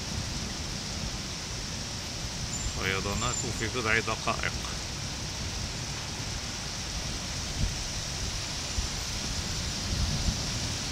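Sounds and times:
heavy rain on flooded street: 0:00.0 - 0:10.9.

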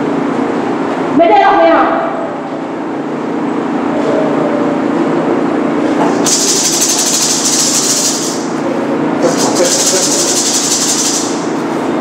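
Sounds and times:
fast hissing rattle: 0:06.2 - 0:08.5, 0:09.2 - 0:11.5.

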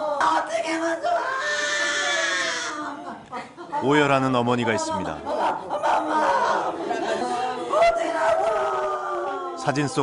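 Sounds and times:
mourners crying out and talking: 0:01.0 - 0:03.0.

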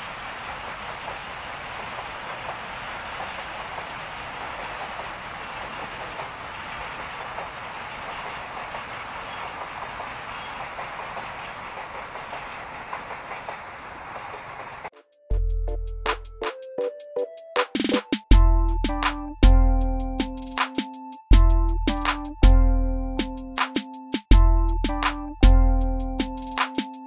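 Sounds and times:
wheels clicking over rail joints: 0:00.0 - 0:14.9
freight train rolling past: 0:00.0 - 0:15.8.

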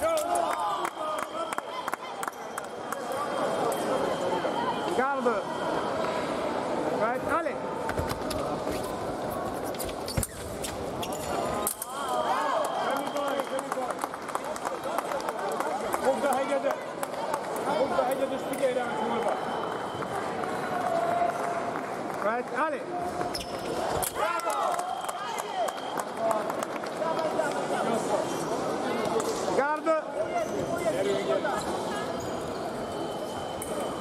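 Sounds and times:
people talking and calling out: 0:00.0 - 0:34.0.

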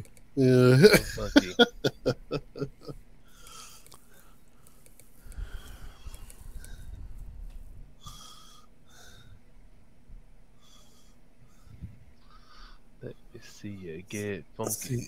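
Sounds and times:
man laughing: 0:00.4 - 0:03.0
faint breaths into microphone: 0:03.3 - 0:09.5, 0:10.6 - 0:12.9.

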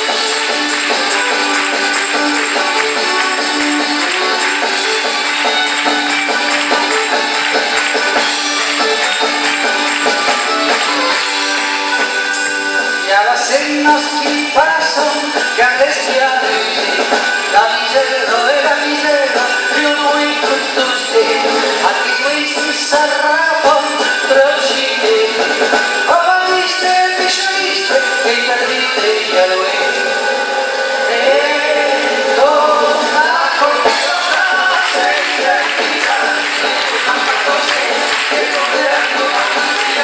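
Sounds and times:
drum kit: 0:00.0 - 0:30.3, 0:31.1 - 0:40.0
diatonic accordion: 0:00.0 - 0:40.0
folk band music: 0:00.0 - 0:40.0
guitars: 0:00.0 - 0:40.0.

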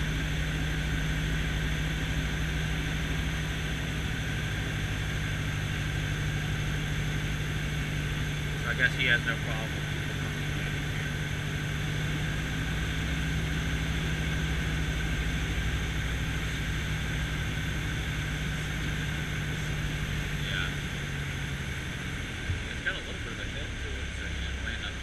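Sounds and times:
airplane engine and propeller droning: 0:00.0 - 0:25.0.

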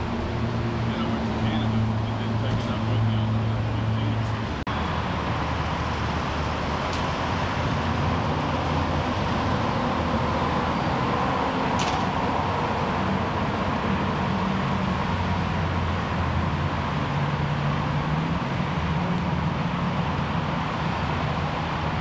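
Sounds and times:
traffic hum: 0:00.0 - 0:22.0.

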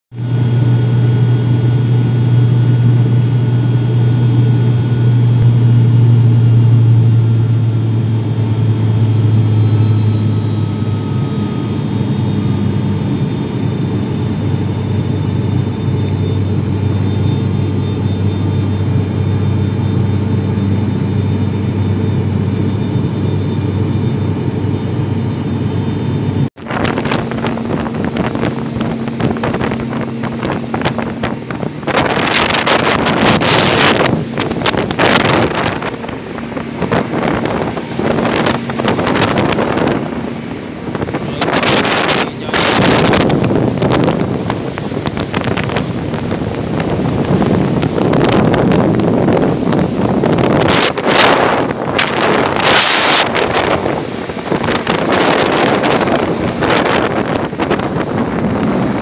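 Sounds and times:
airliner engine drone in cabin: 0:00.1 - 0:59.0
motorboat rushing: 0:00.1 - 0:59.0
wind buffeting microphone: 0:26.6 - 0:59.0.

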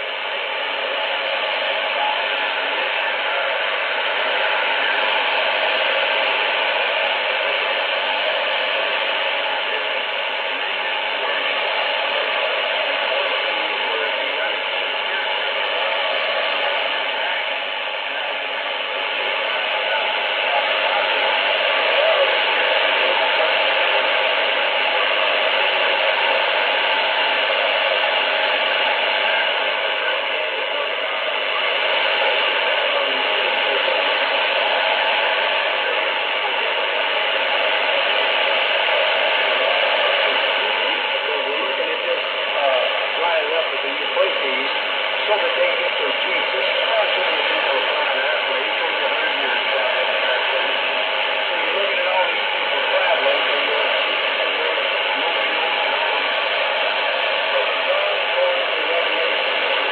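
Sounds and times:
faint radio speech: 0:00.0 - 0:59.9
radio static hiss: 0:00.0 - 0:59.9.

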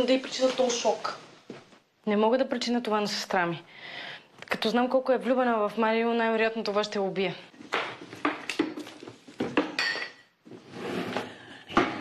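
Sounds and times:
glass bottles clinking: 0:09.5 - 0:10.3.

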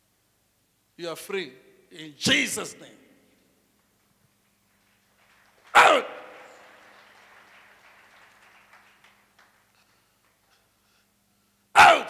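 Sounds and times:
person shouting through a pa: 0:05.8 - 0:06.2, 0:11.8 - 0:12.0.

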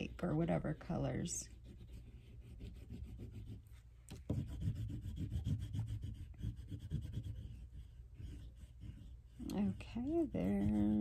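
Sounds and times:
pastel rubbing on paper: 0:00.0 - 0:11.0.

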